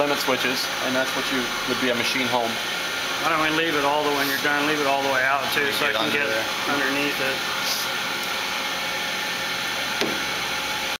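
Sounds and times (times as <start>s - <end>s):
machine hiss and hum: 0.0s - 11.0s.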